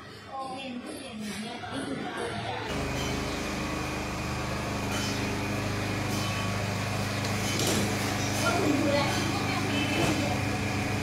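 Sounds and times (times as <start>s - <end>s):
low machine hum: 2.7s - 11.0s.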